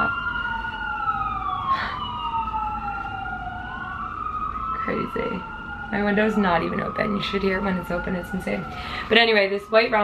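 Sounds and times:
sirens wailing: 0:00.0 - 0:10.0.

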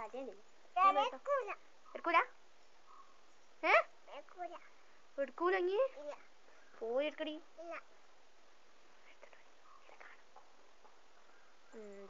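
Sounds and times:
faint soft sounds: 0:00.0 - 0:12.0
faint steady hiss: 0:00.0 - 0:12.0.

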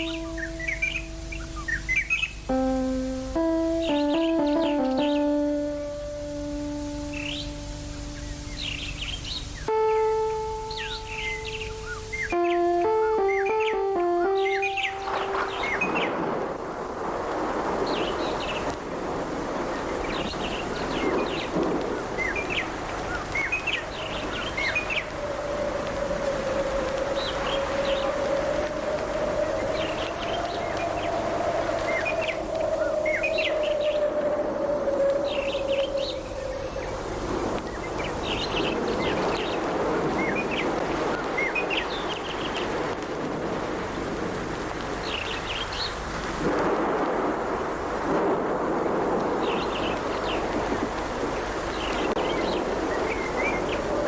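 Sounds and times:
wavering held tone: 0:00.0 - 0:16.3
birds chirping: 0:00.0 - 0:16.4
held instrumental notes: 0:00.0 - 0:16.6
outdoor hiss: 0:00.0 - 0:54.0.

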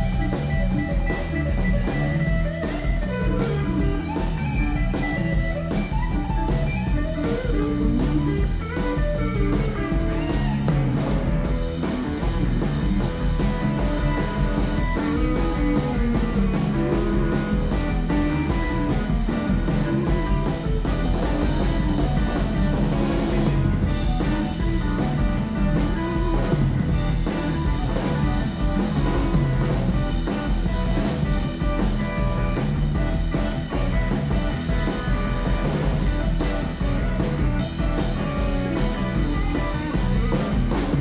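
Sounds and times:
bass guitar: 0:00.0 - 0:41.0
drum kit steady beat: 0:00.0 - 0:41.0
electric guitars: 0:00.0 - 0:41.0.

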